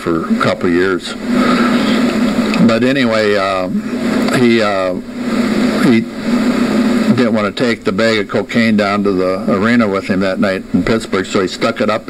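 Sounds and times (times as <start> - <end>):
man speaking haltingly: 2.6 - 5.0, 5.8 - 6.1, 7.1 - 12.0.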